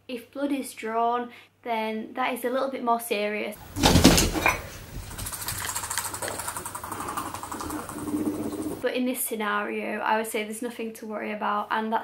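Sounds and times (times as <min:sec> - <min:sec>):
loud thump: 0:03.6 - 0:04.8
guinea pigs scuffling: 0:03.6 - 0:08.8
rustling with fast rattle: 0:03.6 - 0:08.8.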